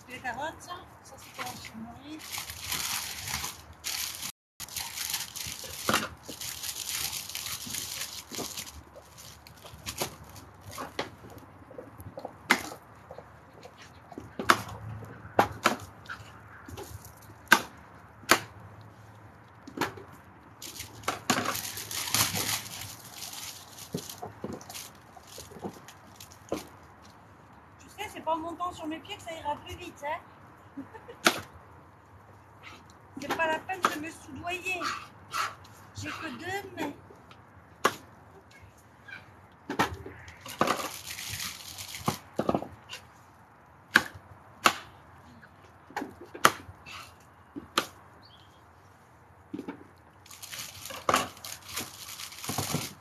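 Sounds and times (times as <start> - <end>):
plastic bags rustling: 1.2 - 11.0, 20.6 - 26.8, 40.4 - 42.4, 50.2 - 53.0.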